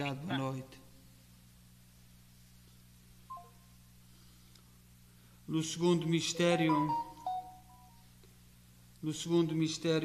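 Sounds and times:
man speaking: 0.0 - 0.8
low steady hum: 0.0 - 10.0.

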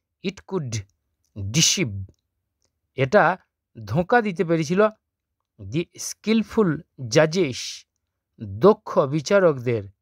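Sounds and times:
person reading aloud: 0.2 - 2.3, 2.9 - 10.0.

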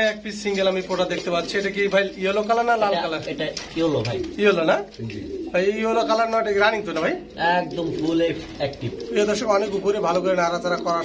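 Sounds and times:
people talking: 0.0 - 11.0
pigeons cooing: 0.1 - 11.0.

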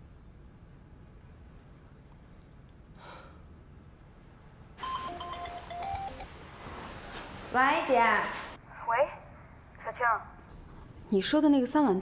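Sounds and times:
phone ringtone beeping melody: 4.8 - 6.3.

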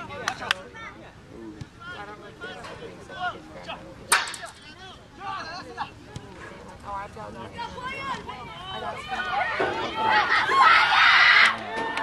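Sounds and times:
voices calling out: 0.0 - 12.0.

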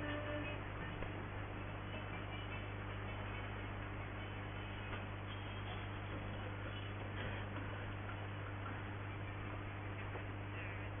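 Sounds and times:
shortwave radio hiss and static: 0.0 - 11.0
steady low hum: 0.0 - 11.0.

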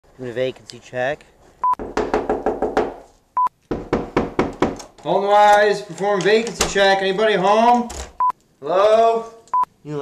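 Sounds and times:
knocking on a door: 1.8 - 3.0, 3.7 - 4.8.

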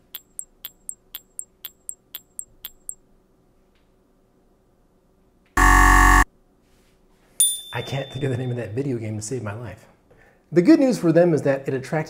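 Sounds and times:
harsh game show buzzer: 5.6 - 6.2.

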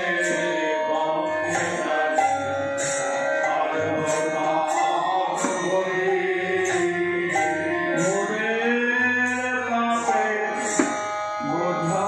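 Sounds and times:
devotional singing: 0.0 - 12.0
hand cymbals beat: 0.0 - 12.0.

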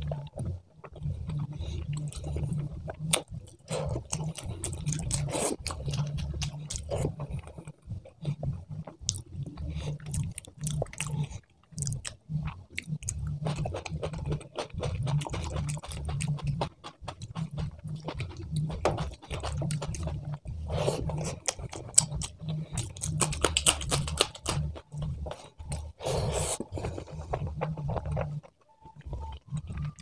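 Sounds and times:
close chewing with mouth clicks: 0.0 - 30.0.

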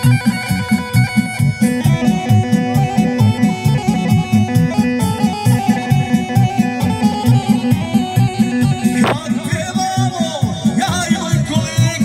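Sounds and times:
folk dance music over loudspeakers: 0.0 - 12.0.

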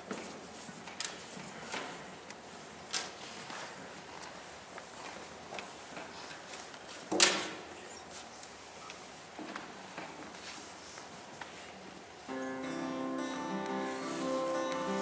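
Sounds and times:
shuffling noises: 0.0 - 12.1, 13.4 - 15.0.

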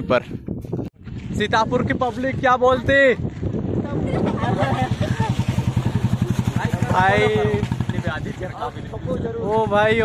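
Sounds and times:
voices: 3.8 - 10.0
motorcycle engine puttering: 5.0 - 8.5.

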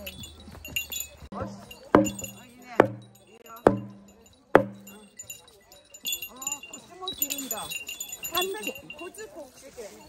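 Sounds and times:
small bells jingling: 0.0 - 10.0.

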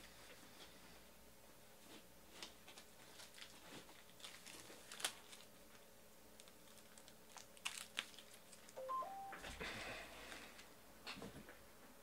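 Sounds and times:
three-note electronic beep: 8.8 - 9.5.

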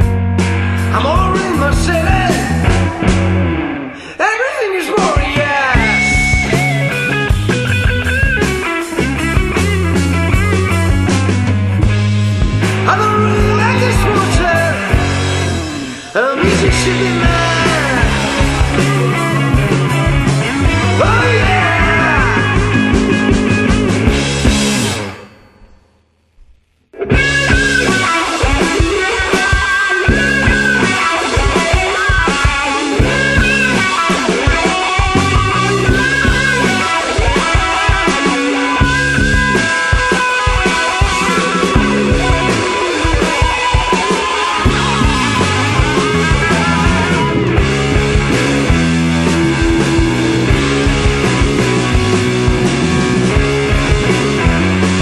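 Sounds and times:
steady drum beat: 0.0 - 3.6, 4.8 - 25.1, 27.0 - 55.0
psychedelic rock band playing: 0.0 - 25.7, 27.0 - 55.0
electric guitar: 0.0 - 26.0, 26.9 - 55.0
bass guitar: 0.0 - 55.0.

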